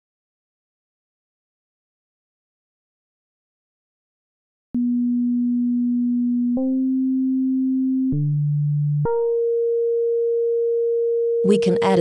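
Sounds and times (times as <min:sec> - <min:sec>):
synthesizer sine tone notes: 0:04.8 - 0:12.0.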